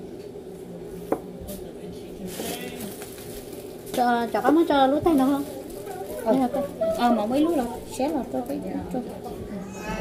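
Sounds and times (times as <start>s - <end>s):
low hum: 8.9s - 10.0s.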